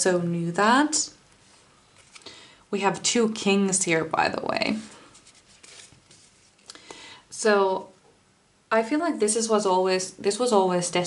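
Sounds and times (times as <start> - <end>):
card deck rustling: 2.0 - 2.3, 5.1 - 6.7.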